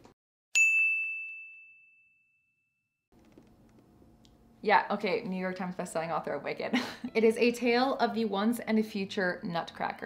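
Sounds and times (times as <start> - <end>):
bell-like ding: 0.6 - 2.9.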